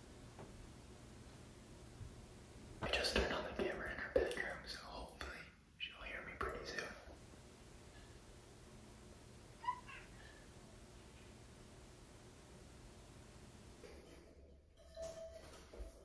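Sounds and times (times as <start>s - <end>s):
man whispering: 2.8s - 7.2s
cat meowing: 9.6s - 10.4s.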